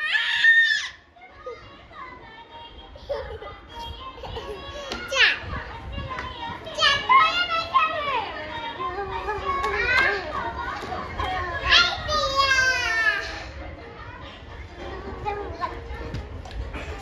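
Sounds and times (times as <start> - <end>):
children squealing and calling out: 0.0 - 1.7.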